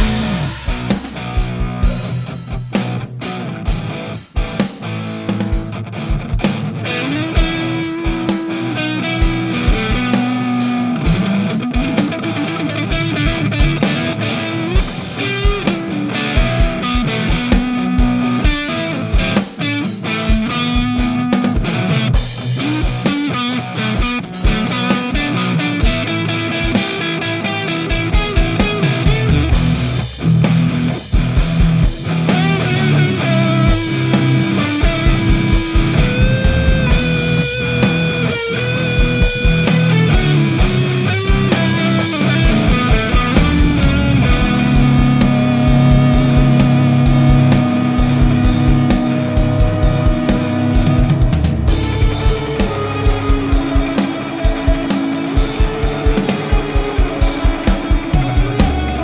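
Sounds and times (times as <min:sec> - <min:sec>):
distorted electric guitar: 0:00.0 - 0:59.0
drum track: 0:00.0 - 0:59.0.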